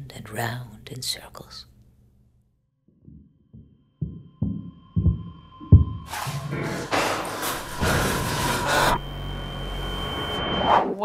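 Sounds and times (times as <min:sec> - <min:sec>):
low hum: 0:02.9 - 0:10.8.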